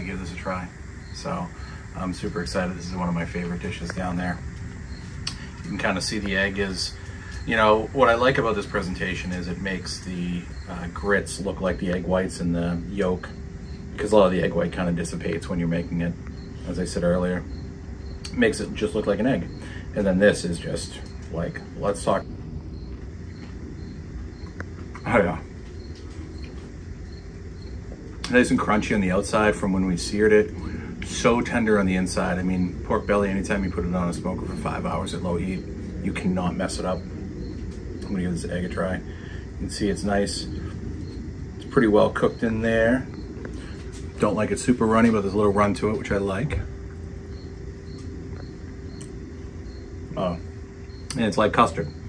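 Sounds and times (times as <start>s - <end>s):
faint cricket chirps: 0.0s - 52.0s
steady low hum: 0.0s - 52.0s.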